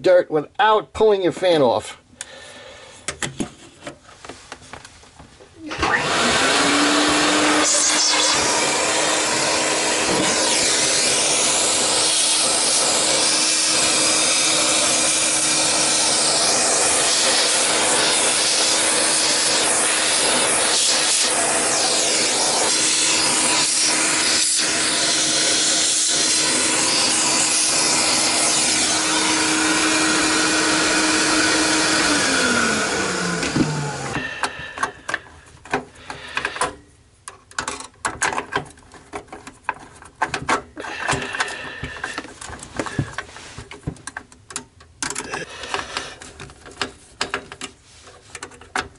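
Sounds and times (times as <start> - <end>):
vacuum cleaner running: 5.6 - 35.2, 40.8 - 43.6, 45.3 - 46.2
small clicks and knocks: 34.8 - 48.9.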